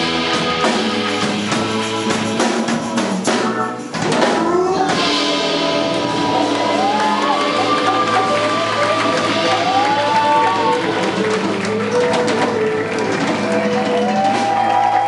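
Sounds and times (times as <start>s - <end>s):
live band music: 0.0s - 15.0s
people hand-clapping: 3.8s - 15.0s
people cheering: 4.0s - 15.0s.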